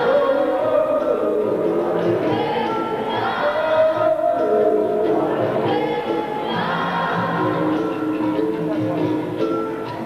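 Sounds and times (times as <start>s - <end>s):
group singing chorus: 0.0s - 8.2s.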